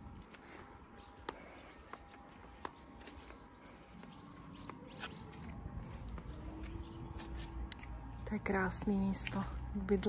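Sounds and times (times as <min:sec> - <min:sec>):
low rumble: 0:03.7 - 0:10.0.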